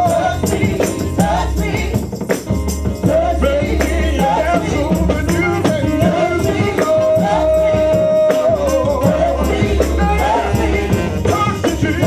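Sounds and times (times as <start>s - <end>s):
women singing together: 0.0s - 2.0s, 3.1s - 5.1s, 5.9s - 11.3s
drum beat: 0.0s - 12.0s
keyboard: 0.0s - 12.0s
tambourine shaking: 0.0s - 12.0s.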